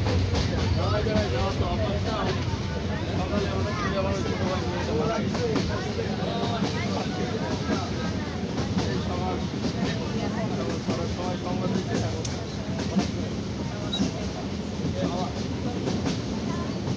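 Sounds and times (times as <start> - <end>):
train rumble: 0.0 - 16.9.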